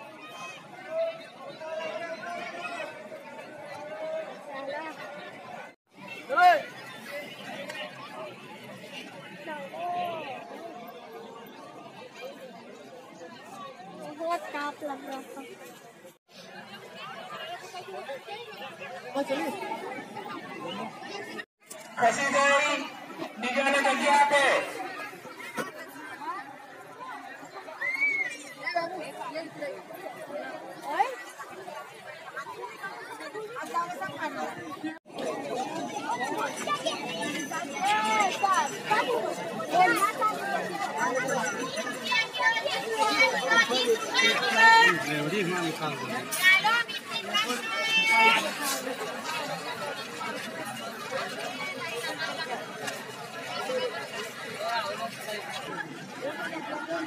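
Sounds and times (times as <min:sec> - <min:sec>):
crowd chatter: 0:00.0 - 0:57.0.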